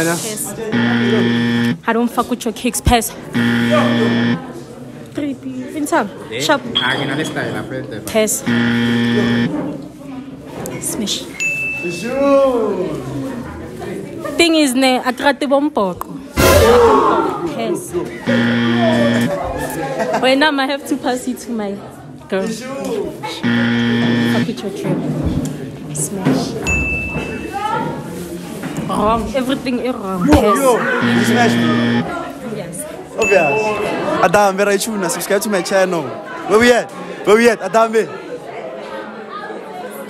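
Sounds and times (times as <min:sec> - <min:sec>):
low flat game-show buzzer: 0:00.7 - 0:01.9, 0:03.3 - 0:04.4, 0:08.4 - 0:09.6, 0:18.3 - 0:19.4, 0:23.4 - 0:24.6, 0:31.0 - 0:32.1.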